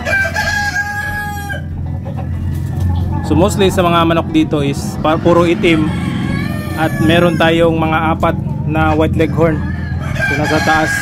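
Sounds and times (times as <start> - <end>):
rooster crowing: 0.0 - 1.8, 5.0 - 7.8, 9.5 - 11.0.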